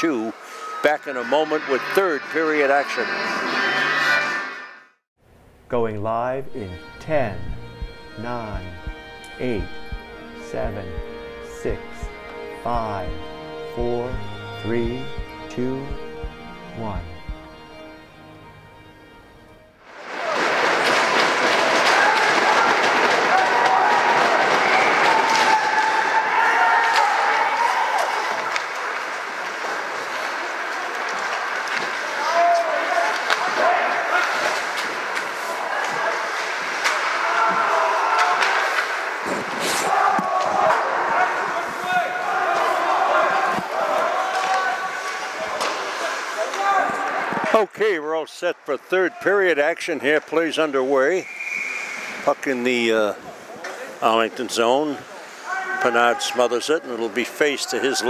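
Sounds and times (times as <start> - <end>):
crowd shouting and cheering: 39.8 - 47.5.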